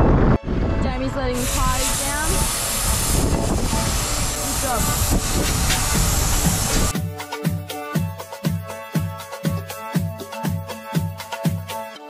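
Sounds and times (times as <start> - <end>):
low rumble: 0.0 - 6.9
air hissing at tyre valve: 1.4 - 6.9.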